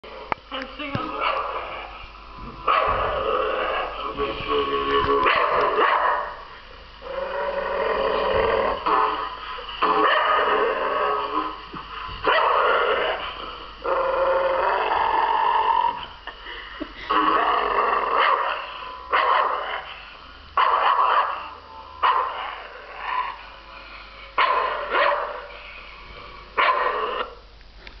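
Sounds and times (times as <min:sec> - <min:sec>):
dog growling: 0:01.2 - 0:27.4.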